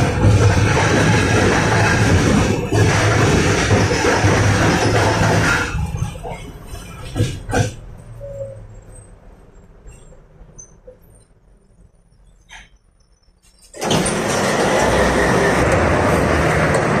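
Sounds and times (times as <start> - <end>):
low hum inside tram: 0.0 - 17.0
tram and road traffic rush: 0.0 - 17.0.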